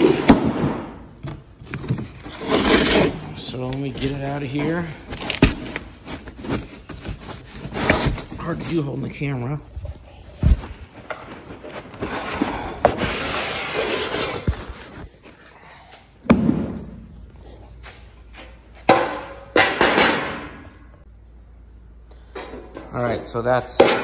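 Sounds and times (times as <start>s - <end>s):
cardboard scraping against steel: 1.2s - 9.3s, 11.3s - 15.2s.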